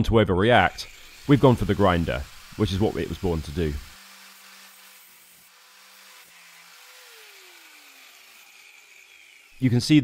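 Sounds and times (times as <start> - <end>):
angle grinder winding down: 0.7 - 10.0.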